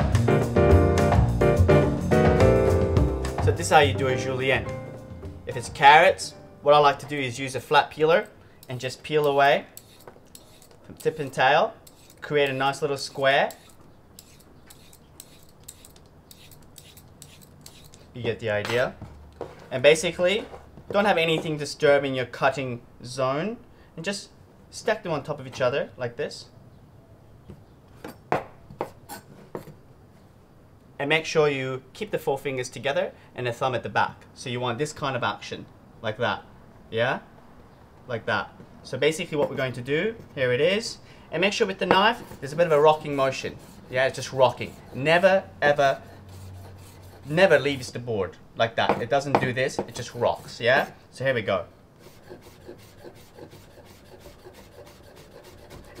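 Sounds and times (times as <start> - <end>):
knife chopping on wooden board: 48.9 - 50.2.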